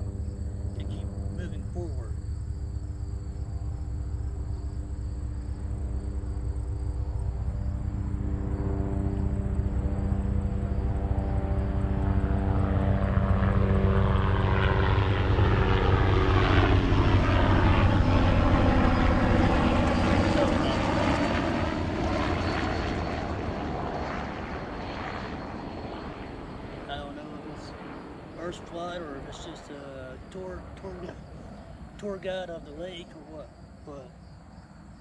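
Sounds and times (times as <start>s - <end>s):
helicopter flying overhead: 0.0s - 35.0s.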